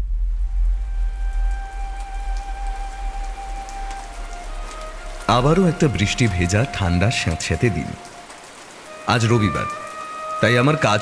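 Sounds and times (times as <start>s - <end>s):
deep low rumble: 0.0s - 4.4s
steady rain: 0.0s - 11.0s.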